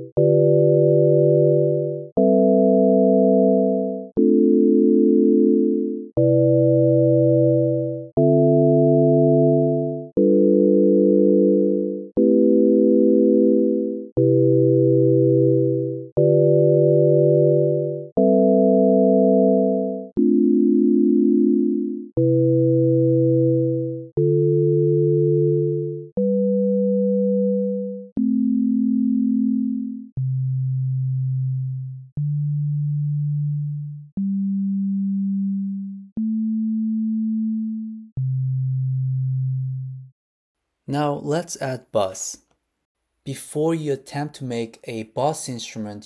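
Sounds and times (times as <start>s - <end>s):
synthesizer sine-tone chords: 0.0s - 40.1s.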